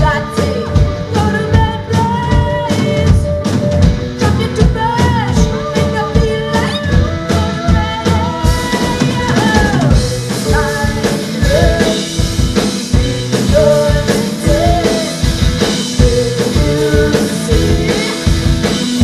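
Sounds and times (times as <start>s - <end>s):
drum kit beat: 0.0s - 19.0s
rock band playing: 0.0s - 19.0s.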